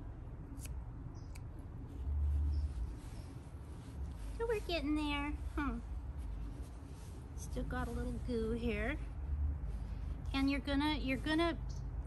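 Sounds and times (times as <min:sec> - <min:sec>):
scissors snipping: 0:00.5 - 0:01.5.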